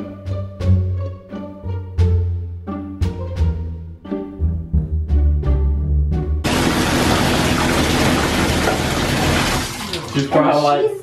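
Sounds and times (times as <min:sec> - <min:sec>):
water running into bathtub: 0:06.4 - 0:10.9.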